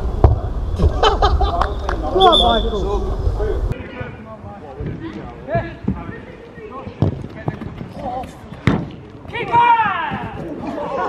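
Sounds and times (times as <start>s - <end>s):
football being kicked: 6.9s - 10.6s
players shouting: 9.2s - 11.0s.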